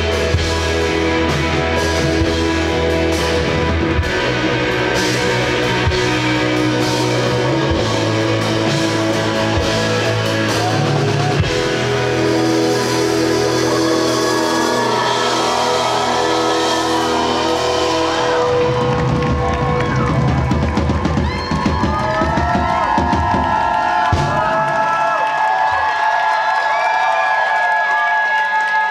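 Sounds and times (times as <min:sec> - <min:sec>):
distorted electric guitars: 0:00.0 - 0:24.7
drum kit playing loudly: 0:00.0 - 0:25.2.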